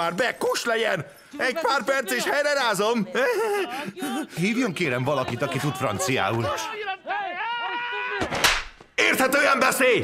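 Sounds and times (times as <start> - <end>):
slap to the face: 8.3 - 8.8.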